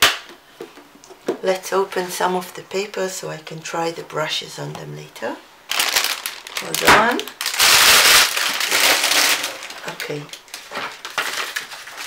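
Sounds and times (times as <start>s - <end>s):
plastic wrap crinkling and tearing: 5.7s - 12.0s.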